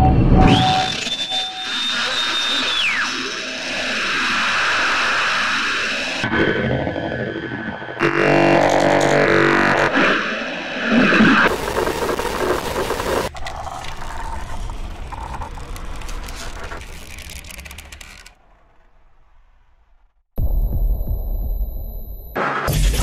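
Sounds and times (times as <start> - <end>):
droning tone sweeping in pitch: 6.3 - 11.5.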